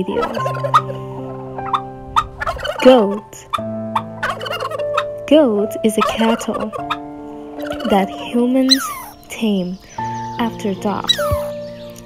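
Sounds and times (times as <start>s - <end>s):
guineafowl calls: 0.0s - 5.2s, 5.8s - 10.1s, 10.9s - 11.8s
soft background music: 0.0s - 12.0s.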